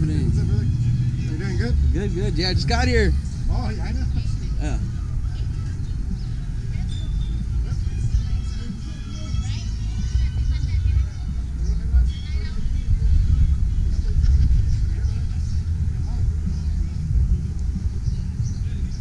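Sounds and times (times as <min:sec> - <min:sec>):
faint distant voices: 0:00.0 - 0:19.0
music: 0:00.0 - 0:19.0
low rumble: 0:09.4 - 0:19.0.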